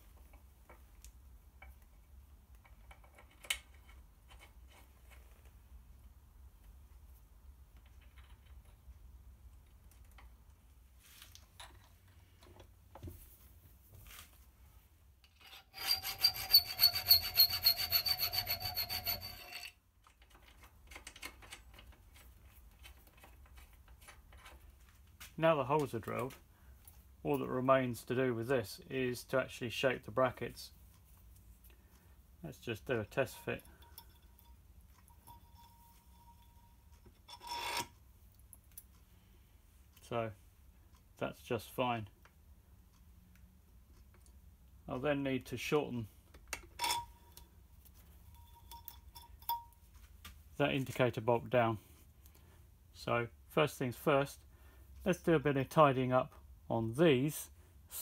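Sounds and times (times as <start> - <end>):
metal part scraping on bracket: 15.3 - 19.8, 37.2 - 38.0, 46.8 - 47.2
rasping metal file strokes: 15.3 - 19.8.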